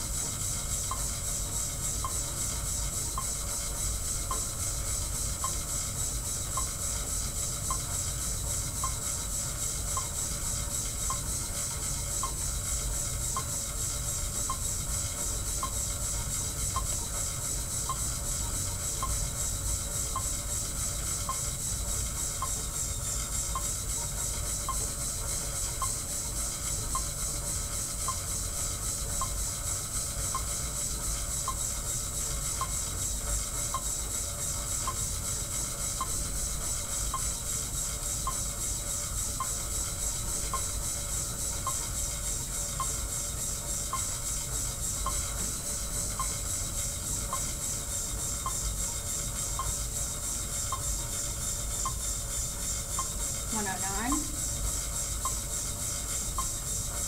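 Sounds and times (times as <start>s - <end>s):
exercise bike hiss: 0.0s - 57.0s.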